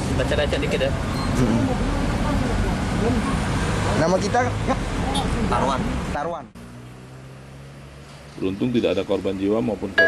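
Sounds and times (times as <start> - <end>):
road traffic rumble: 0.0 - 10.0.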